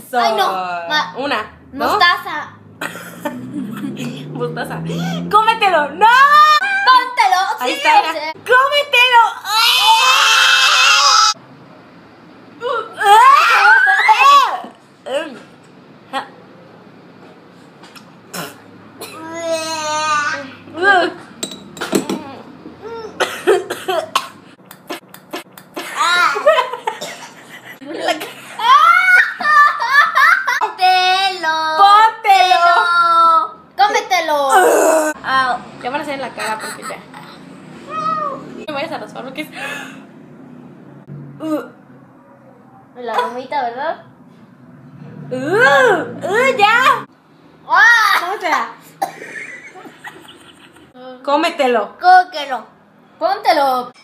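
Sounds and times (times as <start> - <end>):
woman coughing: 2.8 - 3.2, 23.2 - 24.4, 26.9 - 27.4, 34.5 - 35.2, 49.0 - 49.4.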